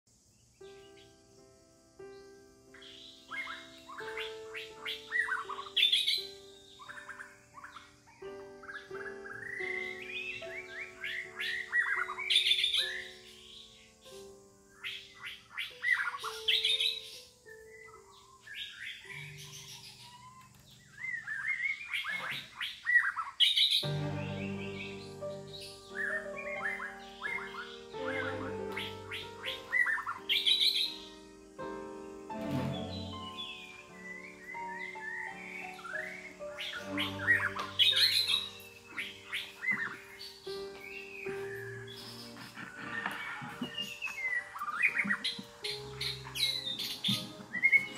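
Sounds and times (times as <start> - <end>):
birds chirping: 0.1 - 47.9
soft music of held notes: 0.1 - 47.9.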